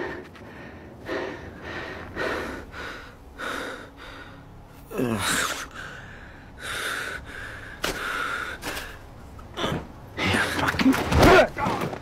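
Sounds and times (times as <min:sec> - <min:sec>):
man breathing heavily: 0:00.0 - 0:09.3.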